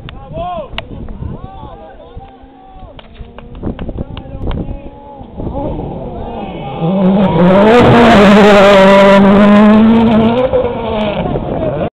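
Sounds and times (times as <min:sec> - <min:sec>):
rally car engine revving high: 0:03.3 - 0:11.9.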